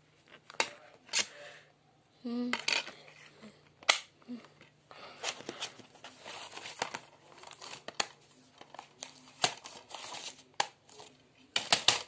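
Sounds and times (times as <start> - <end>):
plastic cases rustling: 4.6 - 12.0.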